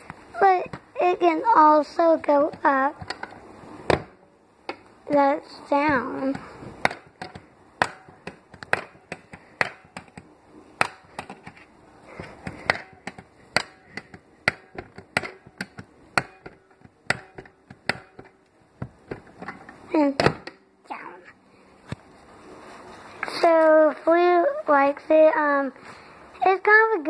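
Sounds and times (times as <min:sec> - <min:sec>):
plastic toy clicks and knocks: 0:06.2 - 0:18.4.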